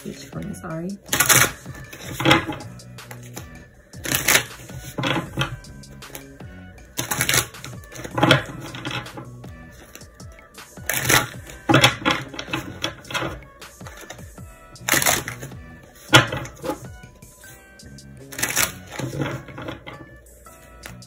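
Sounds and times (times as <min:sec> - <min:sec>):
background music: 0:00.0 - 0:21.0
cards being shuffled: 0:01.1 - 0:16.8, 0:18.2 - 0:20.1, 0:20.7 - 0:21.0.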